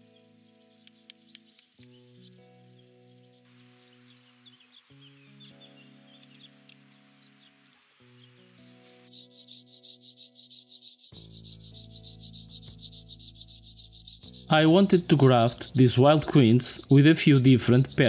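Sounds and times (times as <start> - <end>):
faint bird chirps: 0.0 - 8.4
soft background music: 0.0 - 18.0
hand saw cutting wood: 10.0 - 18.0.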